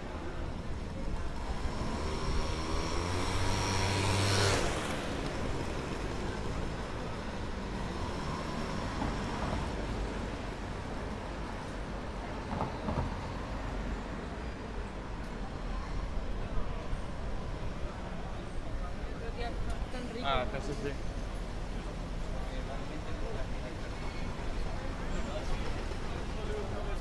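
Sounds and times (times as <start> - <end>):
street traffic: 0.0 - 27.0.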